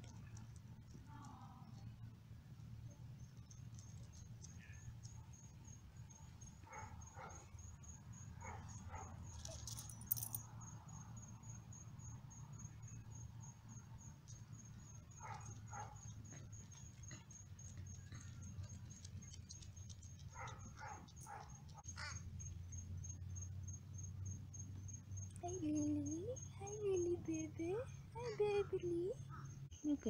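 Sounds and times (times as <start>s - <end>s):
cricket chirping: 0.0s - 30.0s.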